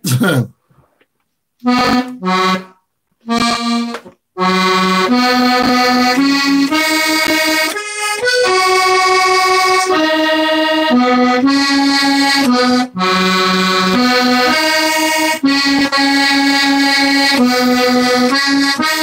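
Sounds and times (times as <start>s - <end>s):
accordion playing folk tune: 1.6s - 19.0s.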